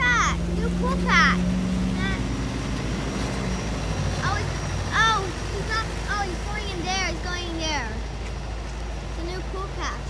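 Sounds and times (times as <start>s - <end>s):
truck engine low drone: 0.0s - 10.0s.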